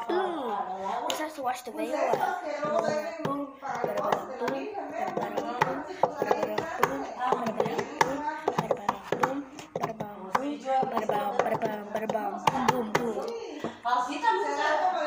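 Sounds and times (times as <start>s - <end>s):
background voices: 0.0s - 15.0s
chopsticks clicking on plastic bowl: 2.0s - 13.8s.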